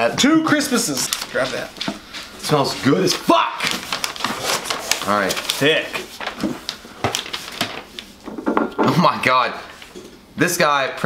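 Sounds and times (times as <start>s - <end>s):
paper and cardboard rustling: 0.0s - 10.0s.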